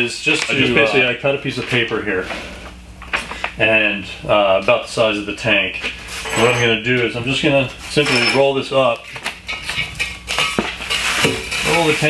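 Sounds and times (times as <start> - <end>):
sharp metal clinks: 6.2 - 6.9.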